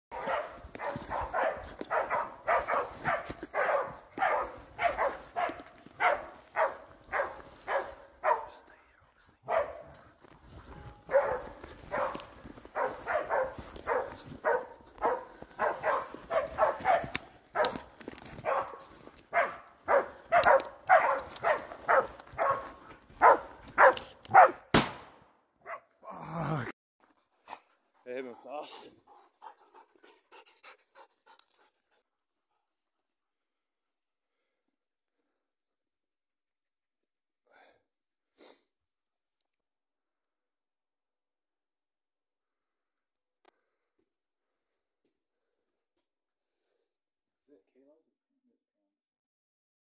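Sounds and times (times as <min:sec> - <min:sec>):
dog barking sharply: 0:00.1 - 0:08.6, 0:09.4 - 0:09.9, 0:11.1 - 0:24.7, 0:25.6 - 0:25.8.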